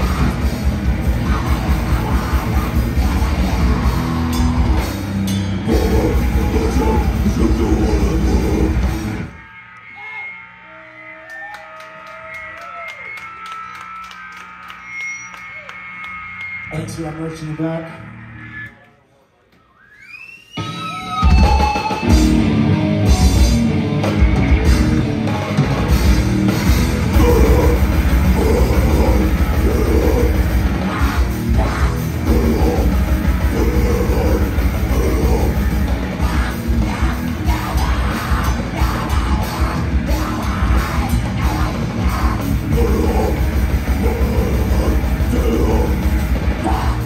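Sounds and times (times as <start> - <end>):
drum kit pounding: 0.0 - 9.3, 21.2 - 47.0
indistinct voices: 0.0 - 10.9, 26.4 - 47.0
guitar amplifier hum and feedback: 20.6 - 47.0.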